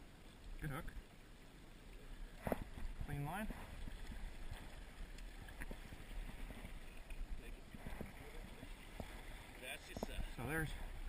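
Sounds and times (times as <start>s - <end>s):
river water rushing: 1.4s - 11.0s
faint clicks: 3.8s - 5.8s.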